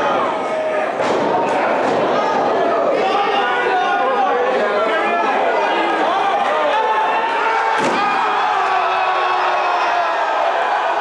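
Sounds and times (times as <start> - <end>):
crowd chatter and shouts: 0.0 - 11.0.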